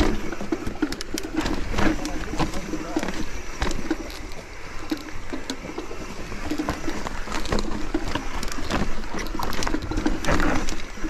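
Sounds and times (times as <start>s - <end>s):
bike frame rattling: 0.0s - 11.0s
bike tyres crunching over dirt: 0.0s - 11.0s.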